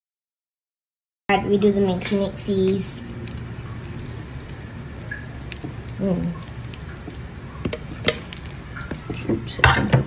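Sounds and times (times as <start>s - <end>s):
wet squelching of mashing: 2.0s - 10.0s.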